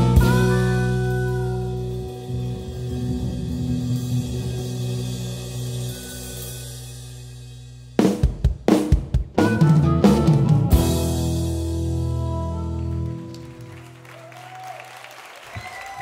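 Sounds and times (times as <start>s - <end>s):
acoustic blues band: 0.0s - 6.4s, 8.8s - 14.0s
drum fill with snare and cymbal: 0.0s - 12.0s
bass guitar notes: 0.0s - 14.1s.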